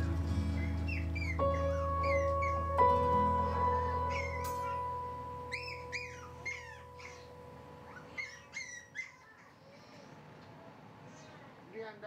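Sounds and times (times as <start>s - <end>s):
background music: 0.0s - 8.2s
puppy whimpering: 0.6s - 2.8s, 3.5s - 4.9s, 5.5s - 10.1s.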